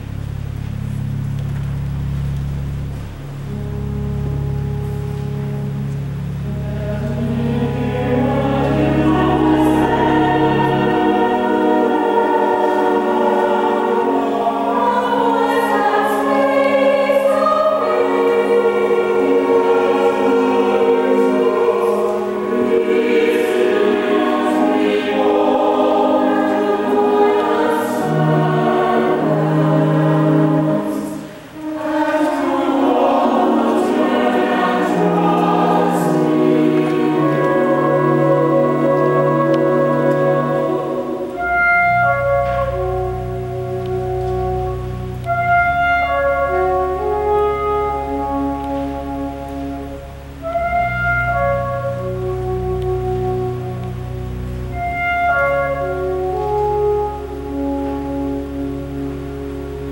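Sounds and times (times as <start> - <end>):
low held note: 0.0 - 14.3
mixed choir singing: 6.5 - 44.6.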